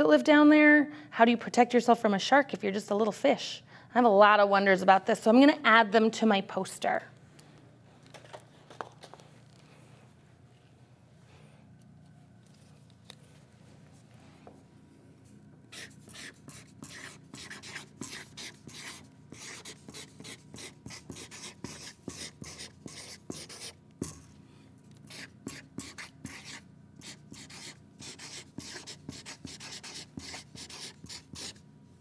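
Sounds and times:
marker scratching on paper: 0:15.7 - 0:24.3, 0:25.1 - 0:31.6.

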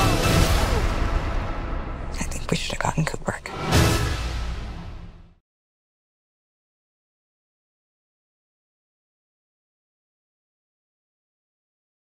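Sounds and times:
low rumble: 0:00.0 - 0:05.4
person whispering: 0:02.2 - 0:03.6.

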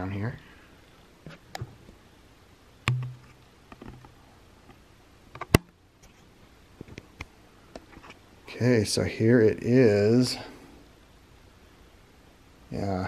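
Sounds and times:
camera handling clicks and taps: 0:02.9 - 0:04.0.

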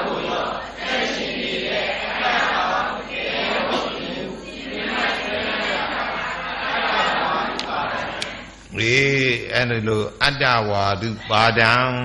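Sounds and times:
voices chanting together: 0:00.0 - 0:08.8, 0:11.0 - 0:12.0.

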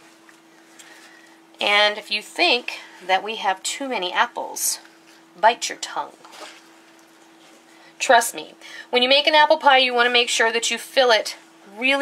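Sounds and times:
steady low hum: 0:00.0 - 0:12.0
soft shuffling of apple slices: 0:06.2 - 0:07.9.

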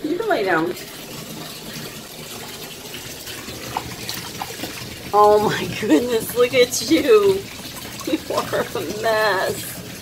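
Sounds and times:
tap water running into bathtub: 0:00.0 - 0:10.0.

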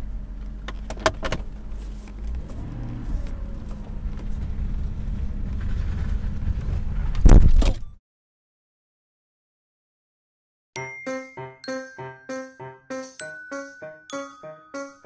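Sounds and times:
car engine running at low revs: 0:00.0 - 0:07.4.

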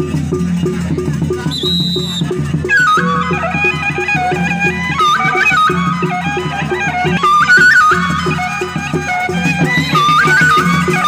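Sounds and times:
drums beating: 0:00.0 - 0:11.0
reed pipe melody: 0:01.3 - 0:11.0
high steady whistle note: 0:01.5 - 0:04.4.

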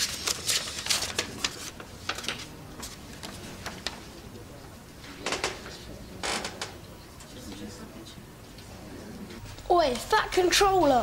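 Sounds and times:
paper crackling: 0:00.0 - 0:04.0
paper envelope rustling: 0:00.0 - 0:04.0.

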